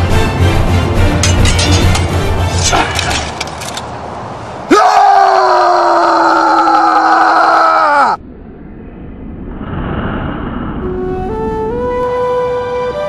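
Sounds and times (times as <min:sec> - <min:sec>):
man screaming: 0:04.7 - 0:08.2
steady rushing noise: 0:08.2 - 0:12.2.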